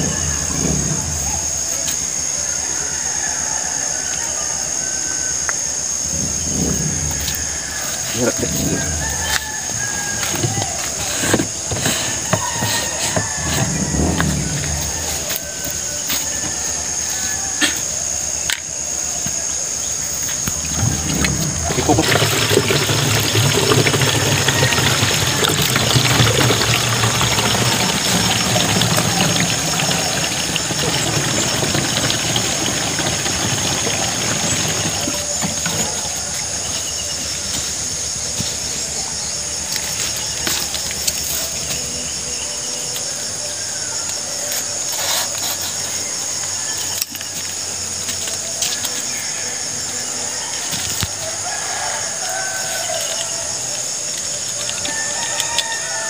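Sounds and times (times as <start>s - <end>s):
water pouring into a tank: 0.0s - 2.2s, 6.1s - 17.4s, 20.4s - 41.8s, 50.6s - 56.0s.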